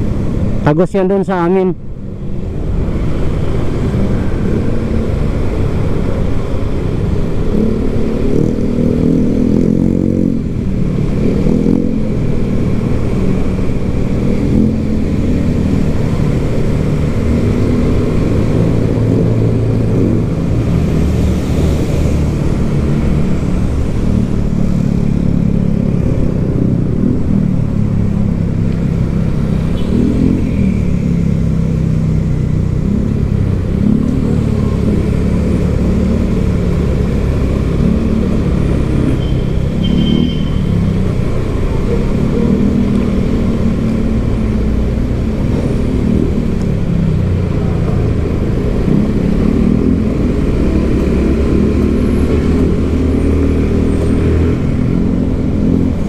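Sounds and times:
motorcycle engine revving: 3.3s - 56.0s.

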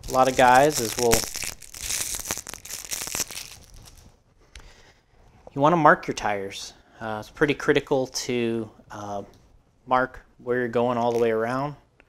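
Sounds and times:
plastic packaging crinkling and tearing: 0.0s - 4.1s.

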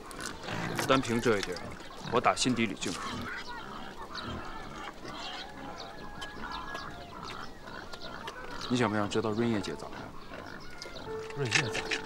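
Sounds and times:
farmyard fowl honking: 10.8s - 12.0s.

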